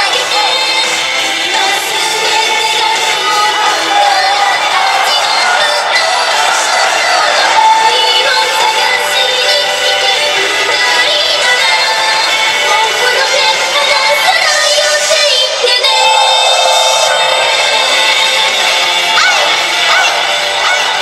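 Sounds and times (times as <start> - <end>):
woman singing into microphone: 0.0 - 18.5.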